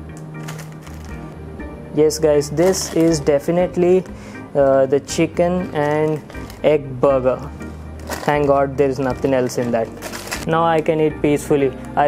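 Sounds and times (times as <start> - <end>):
background music with low notes: 0.0 - 12.0
paper wrapper crackling: 0.4 - 1.2, 2.6 - 3.2, 5.7 - 6.7, 8.0 - 10.6.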